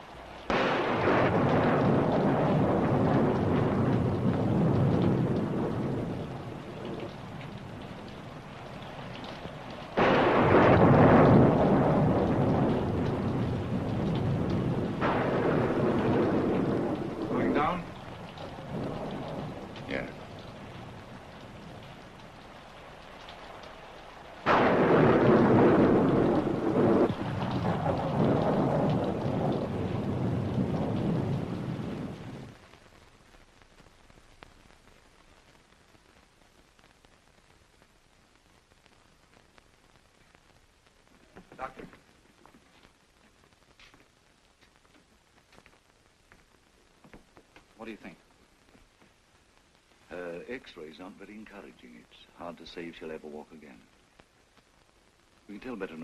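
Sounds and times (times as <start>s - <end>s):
rain: 0.0s - 56.0s
thunder claps rumbling: 0.5s - 32.7s.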